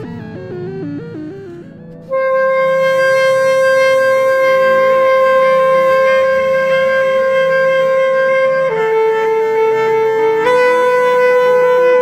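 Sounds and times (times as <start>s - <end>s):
electronic backing: 0.0s - 12.0s
saxophone sustained note: 0.0s - 12.0s.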